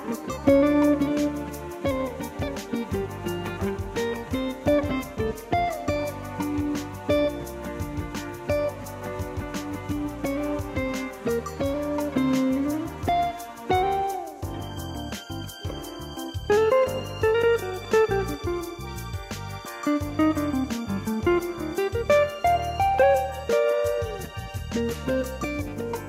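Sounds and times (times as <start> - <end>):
electric jazz guitar melody: 0.0 - 26.0
steady beat: 0.0 - 26.0
bass line: 0.3 - 26.0.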